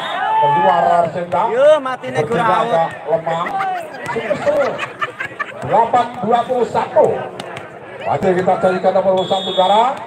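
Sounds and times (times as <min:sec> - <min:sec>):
people talking: 0:00.8 - 0:10.0.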